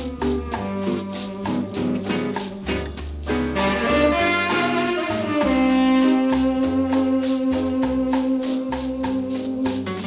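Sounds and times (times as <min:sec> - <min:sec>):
band accompaniment: 0:00.0 - 0:10.0
tenor saxophone melody: 0:03.6 - 0:08.8.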